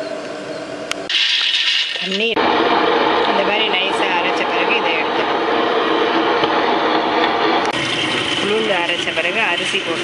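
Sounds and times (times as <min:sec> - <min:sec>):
wet grinder running: 0:01.4 - 0:10.0
voices: 0:02.0 - 0:02.4, 0:03.2 - 0:05.5, 0:08.4 - 0:10.0.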